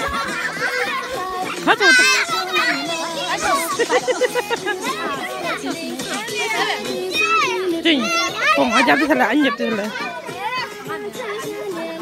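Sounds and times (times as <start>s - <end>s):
children and adults talking: 0.0s - 12.0s
high-pitched children's cries: 0.0s - 12.0s.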